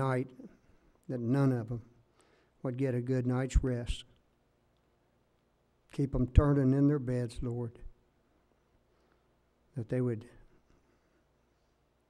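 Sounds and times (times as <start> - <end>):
man speaking: 0.0 - 1.9, 2.6 - 4.1, 5.9 - 7.9, 9.7 - 10.5.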